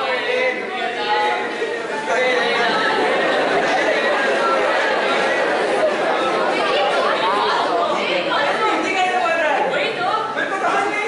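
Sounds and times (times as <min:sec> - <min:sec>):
indistinct chatter of many voices: 0:00.0 - 0:11.0.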